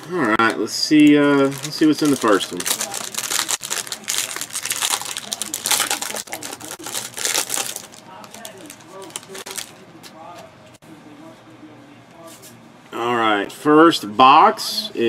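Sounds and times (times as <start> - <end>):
plastic wrapping crinkling and tearing: 0.0 - 10.4
cards rustling: 0.4 - 10.5.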